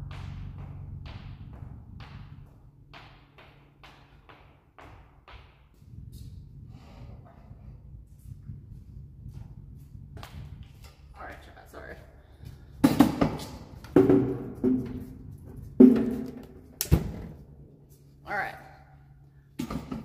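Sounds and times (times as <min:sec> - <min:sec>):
objects knocking and thumping: 0:12.7 - 0:17.4, 0:19.6 - 0:20.0.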